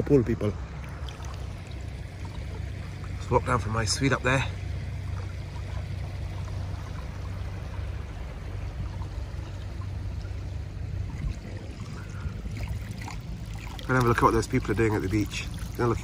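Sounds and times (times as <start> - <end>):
low rumble: 0.0 - 16.0
pool water sloshing: 0.0 - 16.0.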